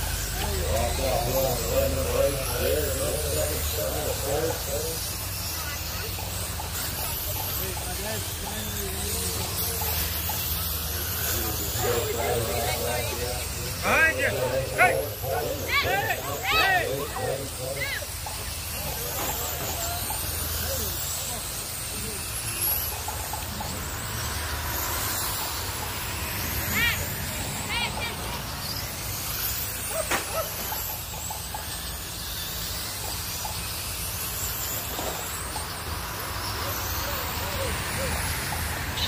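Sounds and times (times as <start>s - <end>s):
rc car motors whining: 0.0s - 39.0s.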